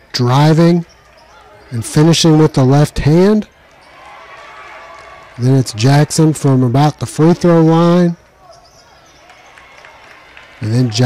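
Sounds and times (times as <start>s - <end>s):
players running on court: 0.4s - 11.0s.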